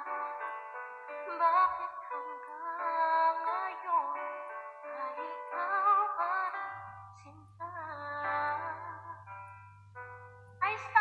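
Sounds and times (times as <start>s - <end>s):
woman singing: 0.0s - 9.4s, 10.6s - 11.0s.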